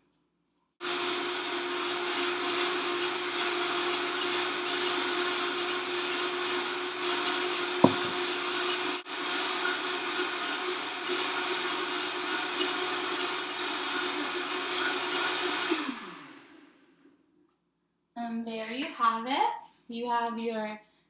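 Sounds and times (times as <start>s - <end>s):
blender motor winding down: 0.8s - 17.0s
blender running: 0.8s - 17.0s.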